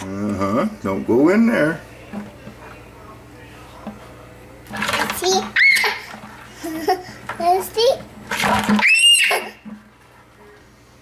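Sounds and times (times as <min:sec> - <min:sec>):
child squealing: 0:05.6 - 0:06.0, 0:08.8 - 0:09.6.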